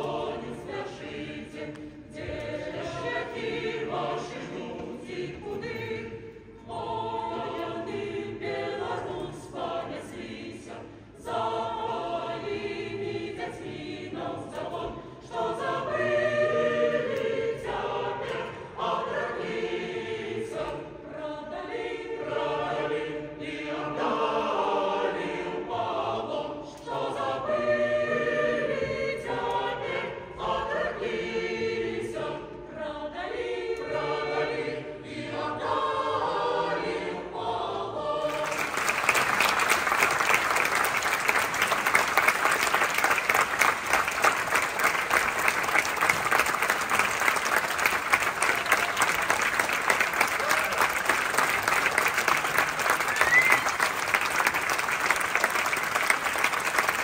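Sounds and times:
choir singing in harmony: 0:00.0 - 0:57.0
audience applause: 0:38.3 - 0:57.0.

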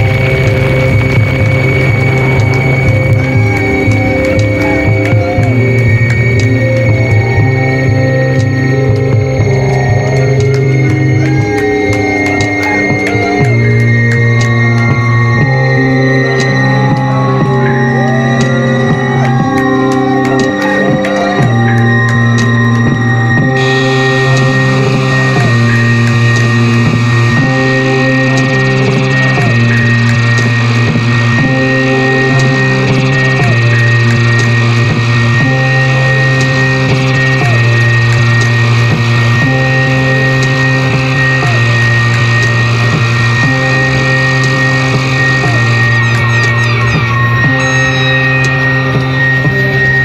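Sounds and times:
bass guitar droning: 0:00.0 - 0:50.0
distorted electric guitars: 0:00.0 - 0:50.0
loud black metal played live: 0:00.0 - 0:50.0.

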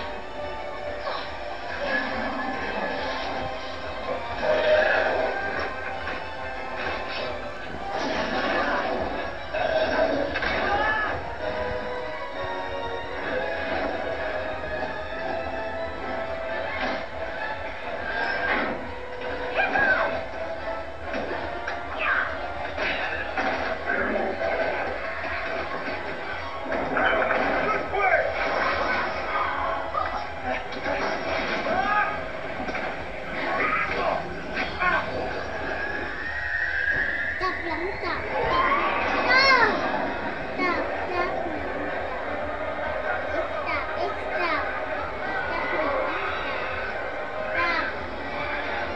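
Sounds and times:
movie soundtrack music with voices: 0:00.0 - 0:48.9.

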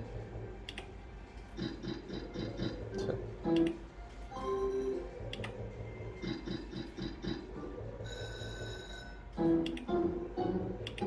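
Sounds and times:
repeated beeping tones: 0:01.6 - 0:11.0
slot machine win chime: 0:08.0 - 0:09.3
steady high ringing tone: 0:08.0 - 0:09.3.

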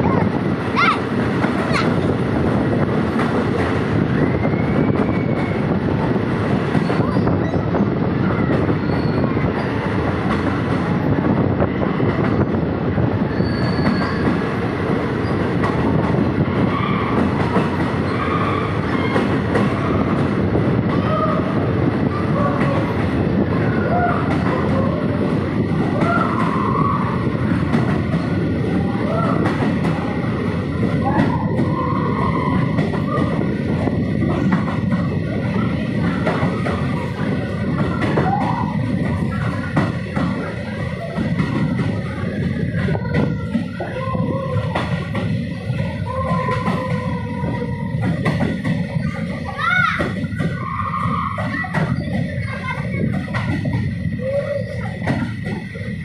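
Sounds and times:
train wheels rumbling in tunnel: 0:00.0 - 0:56.0.

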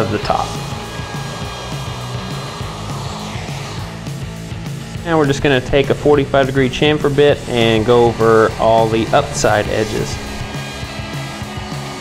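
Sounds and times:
background music with bass line: 0:00.0 - 0:12.0
router cutting wood: 0:00.0 - 0:12.0.

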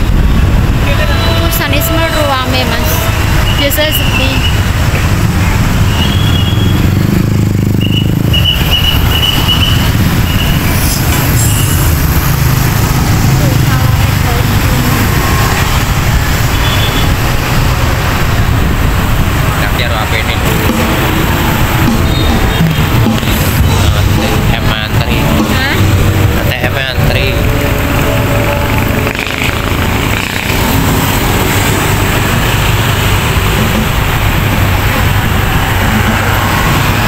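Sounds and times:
scooter traffic rumble: 0:00.0 - 0:37.0.

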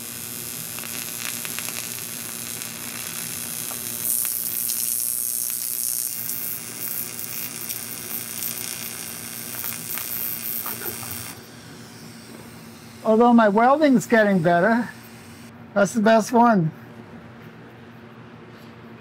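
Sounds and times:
welding arc hissing: 0:00.0 - 0:15.5.

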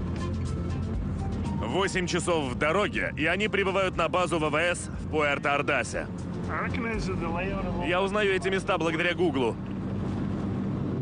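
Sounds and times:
vehicle engine hum: 0:00.0 - 0:11.0
man speaking: 0:01.6 - 0:09.6.

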